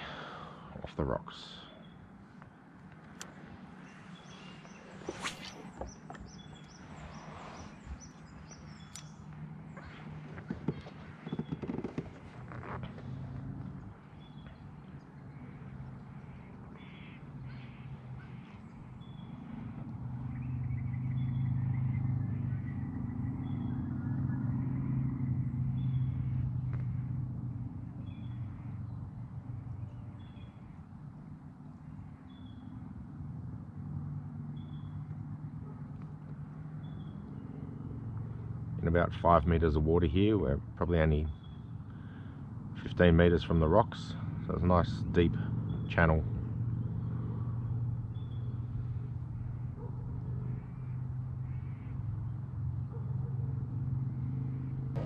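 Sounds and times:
distant engine drone: 0.0s - 55.0s
bird chirping: 1.5s - 13.2s, 13.8s - 26.6s, 28.0s - 30.9s, 31.6s - 32.8s, 34.5s - 35.1s, 36.7s - 37.8s, 41.2s - 42.3s, 45.0s - 52.5s.

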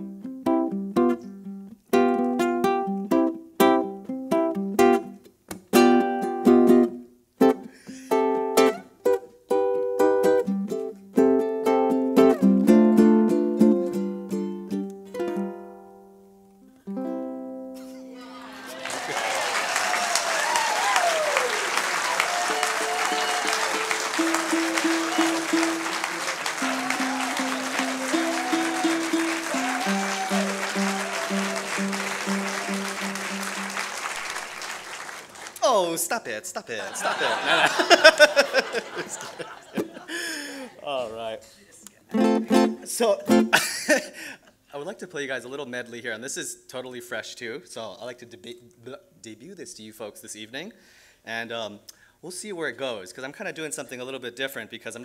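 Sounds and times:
solo ukulele playing: 0.0s - 18.5s, 22.5s - 34.4s, 42.1s - 43.6s
audience cheers and whoops: 18.1s - 35.3s, 37.1s - 40.7s
audience applauding: 18.2s - 36.0s, 36.9s - 40.7s.

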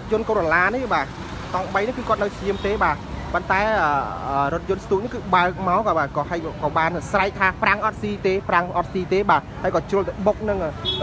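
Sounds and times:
person talking: 0.0s - 10.8s
faint low street rumble: 0.0s - 11.0s.

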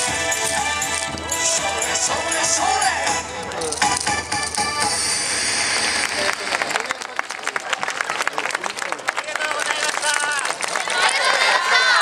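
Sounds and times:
high voices shouting in chorus: 10.9s - 12.0s.

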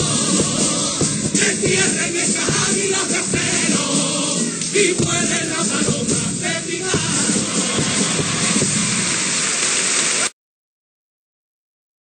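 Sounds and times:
audience applauding: 7.1s - 10.4s.

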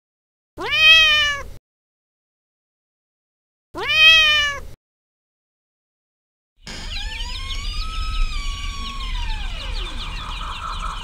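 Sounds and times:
cat meowing: 0.6s - 1.6s, 3.8s - 4.8s.

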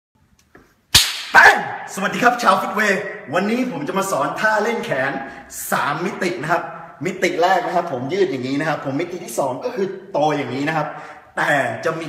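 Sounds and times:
sharp slap-like crack: 0.9s - 1.6s
man's voice: 1.3s - 12.0s.

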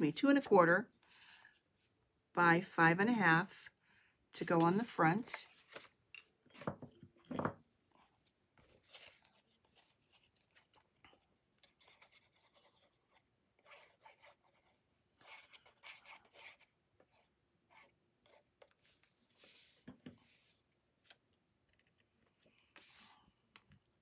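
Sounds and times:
rustling of cardstock: 8.6s - 10.6s.

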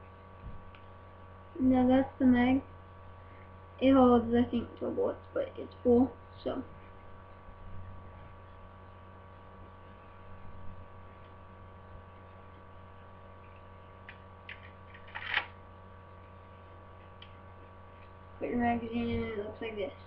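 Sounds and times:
steady electrical hum: 0.0s - 20.0s
lego bricks rattling: 14.5s - 15.5s.

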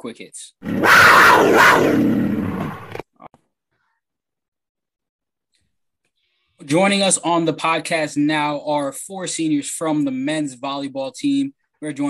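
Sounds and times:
loud roar sound effect: 0.6s - 3.0s.

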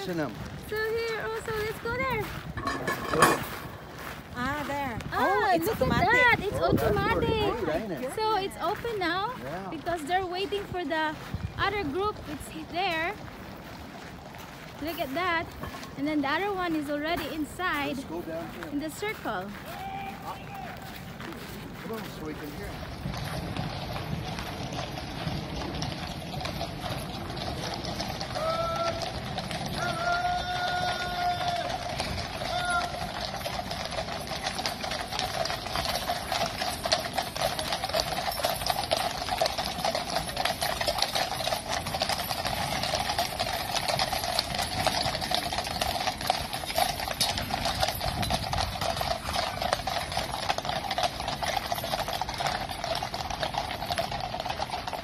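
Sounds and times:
horse hooves clip-clopping on road: 0.0s - 55.0s.

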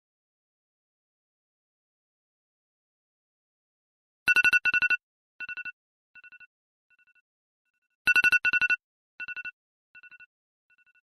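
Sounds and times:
phone ringtone trilled rings: 8.1s - 11.0s.

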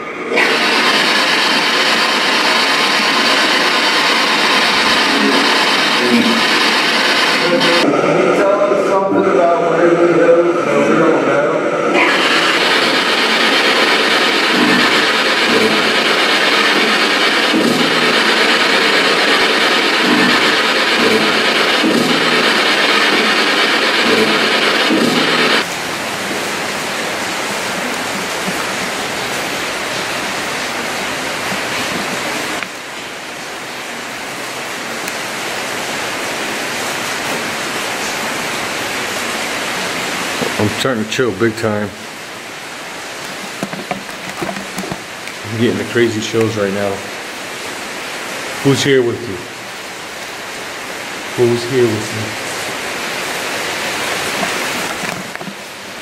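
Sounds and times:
static hiss: 0.0s - 7.8s, 11.9s - 33.8s, 36.0s - 56.0s.

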